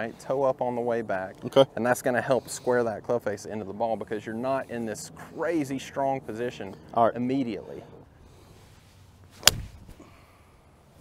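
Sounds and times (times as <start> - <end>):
golf club striking ball: 9.4 - 10.0.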